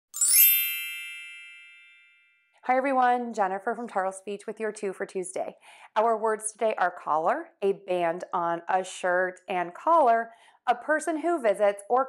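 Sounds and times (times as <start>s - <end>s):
logo chime: 0.1s - 2.5s.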